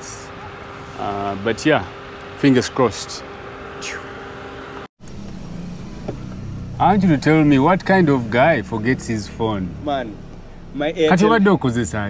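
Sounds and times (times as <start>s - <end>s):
car engine and tyres rumbling: 0.0s - 12.0s
faint hum: 5.0s - 11.2s.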